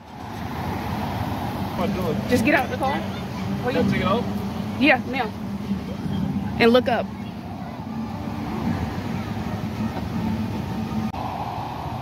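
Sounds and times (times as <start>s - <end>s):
road traffic engine noise: 0.0s - 12.0s.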